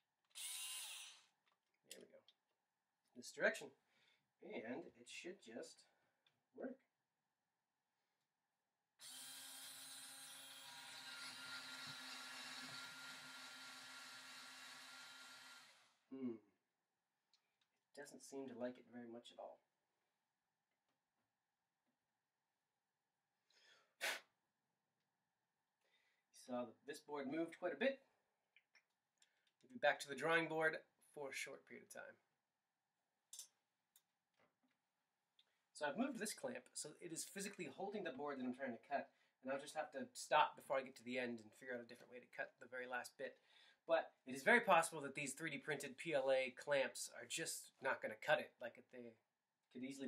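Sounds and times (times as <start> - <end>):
cordless drill motor whine: 0.3 - 1.2, 9.0 - 16.0.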